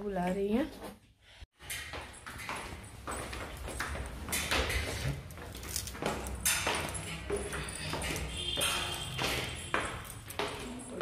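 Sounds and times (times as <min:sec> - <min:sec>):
footsteps going down stairs: 0:01.6 - 0:11.0.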